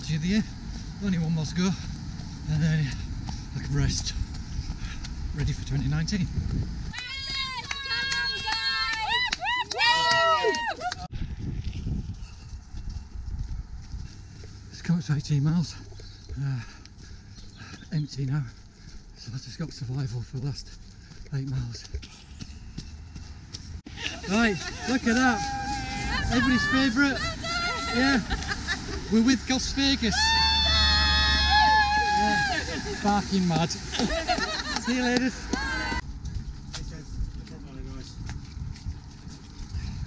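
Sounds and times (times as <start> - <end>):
wind rumbling on microphone: 0.0 - 9.4, 10.0 - 17.9, 35.4 - 40.0
women cheering with high whoops: 7.0 - 11.1, 24.6 - 28.5, 30.1 - 33.1, 35.5 - 36.0.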